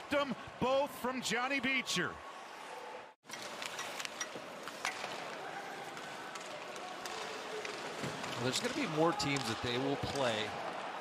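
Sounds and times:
hockey sticks and puck clicking on ice: 3.3s - 10.8s.

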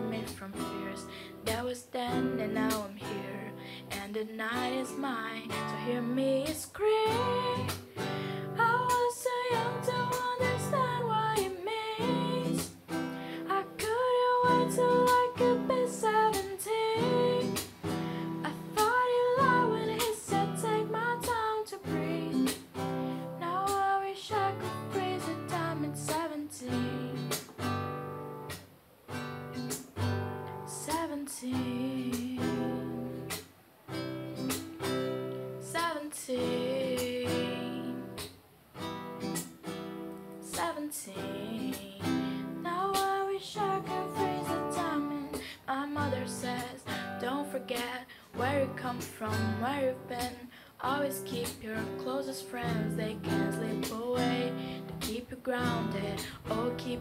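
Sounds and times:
woman singing: 0.0s - 27.9s, 30.4s - 33.4s, 34.8s - 38.4s, 40.2s - 57.0s
strummed acoustic guitar: 0.0s - 57.0s.

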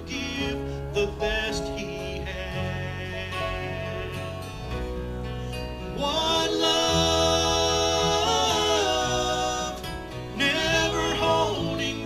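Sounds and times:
men singing: 0.0s - 4.4s, 5.8s - 12.0s
country gospel band playing: 0.0s - 12.0s.

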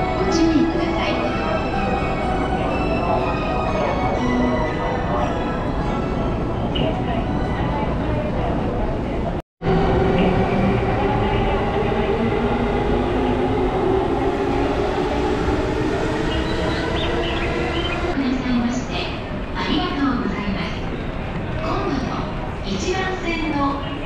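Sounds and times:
electric train hum: 0.0s - 19.6s
crowd chatter: 0.0s - 24.0s.

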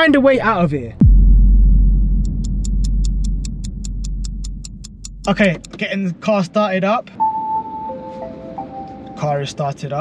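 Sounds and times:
car start-up chime: 7.2s - 9.6s.

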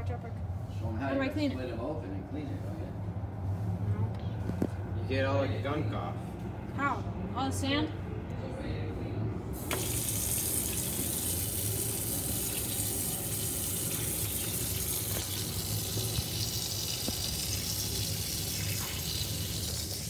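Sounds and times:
tap water splashing in sink: 9.6s - 20.0s.

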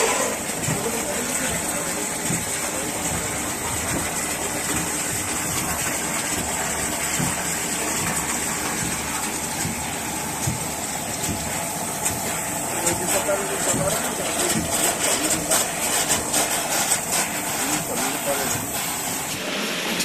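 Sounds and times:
treatment machine running: 0.0s - 20.0s
water pouring into trough: 0.0s - 20.0s.

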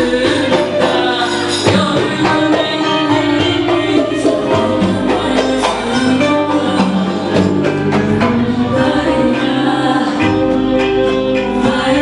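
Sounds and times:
band playing folk music: 0.0s - 12.0s
hand percussion: 0.0s - 12.0s.

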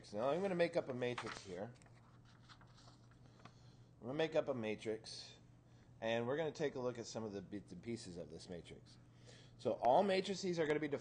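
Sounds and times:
low steady hum: 0.0s - 11.0s
paper rustling and clicking: 1.0s - 3.6s.

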